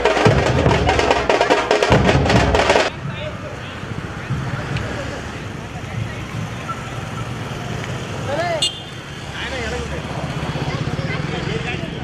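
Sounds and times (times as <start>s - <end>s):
voices: 2.6s - 12.0s
scooter and motorcycle engines passing: 3.0s - 12.0s.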